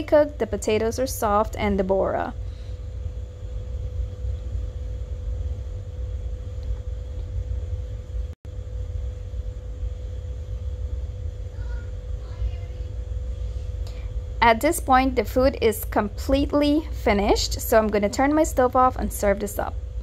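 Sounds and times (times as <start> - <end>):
faint constant hum: 0.0 - 20.0
steady low rumble: 0.0 - 20.0.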